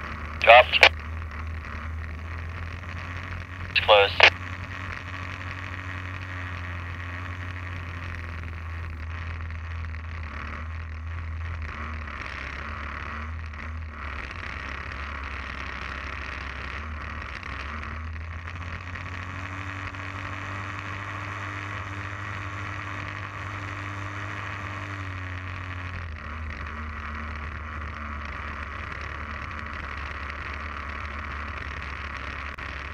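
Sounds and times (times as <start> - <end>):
small aircraft engine and propeller: 4.4 - 32.9.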